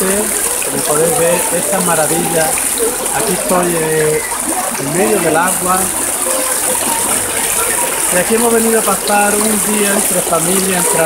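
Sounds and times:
river running over stones: 0.0s - 11.0s.

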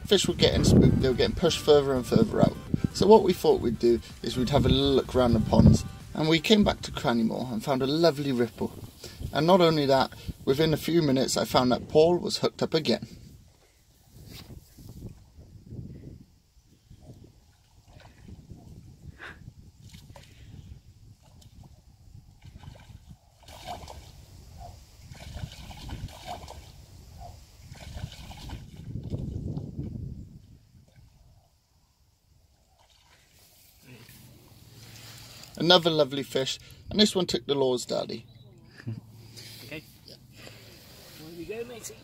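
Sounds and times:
wind buffeting microphone: 0.0s - 7.8s, 8.4s - 12.3s, 13.0s - 31.5s.

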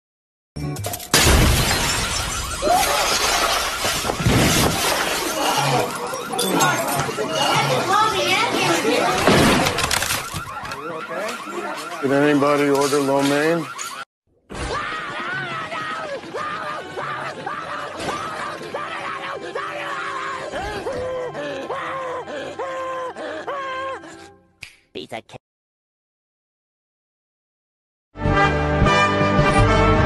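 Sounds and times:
warbling electronic alarm: 1.2s - 14.1s
faint voices: 5.2s - 9.3s.

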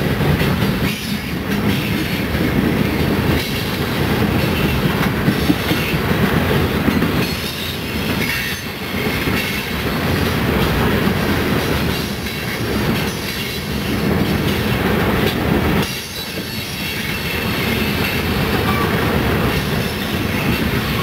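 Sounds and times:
train wheels rumbling on rail: 0.0s - 21.0s
wheels clicking over rail joints: 0.2s - 21.0s.

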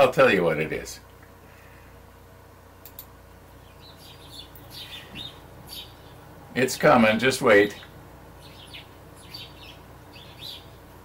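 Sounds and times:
light clicks: 2.8s - 3.1s
faint bird chirps: 3.6s - 6.2s, 7.7s - 10.9s.

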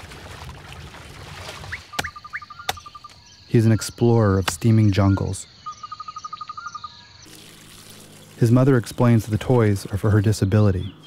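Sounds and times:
insect chirping trill: 1.7s - 9.4s.

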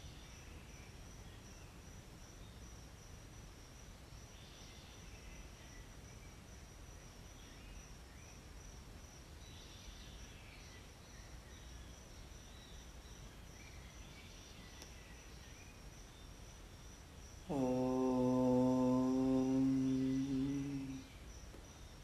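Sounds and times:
faint steady background noise: 0.0s - 22.0s
man chanting a held note: 17.5s - 21.1s.

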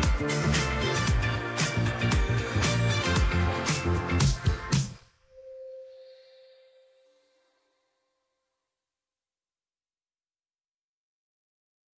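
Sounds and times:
music: 0.0s - 8.8s
clear ringing tone: 5.3s - 7.6s.

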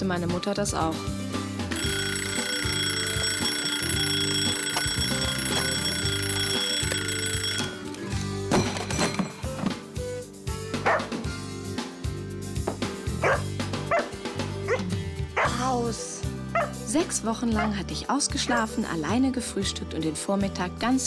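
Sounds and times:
background music: 0.0s - 21.0s
alarm clock ringing: 1.7s - 8.2s.

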